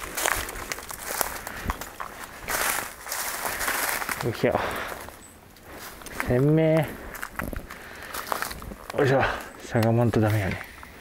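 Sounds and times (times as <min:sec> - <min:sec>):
footsteps on dry leaves: 0:00.0 - 0:10.9.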